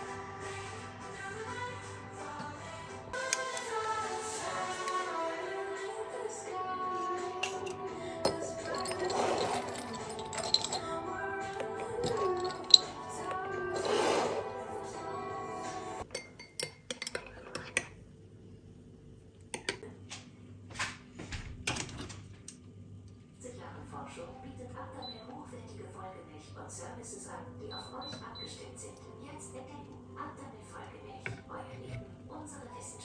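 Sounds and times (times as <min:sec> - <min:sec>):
background music with melody: 0:00.0 - 0:16.1
dishes and utensils clinking: 0:07.3 - 0:14.6, 0:31.2 - 0:32.1.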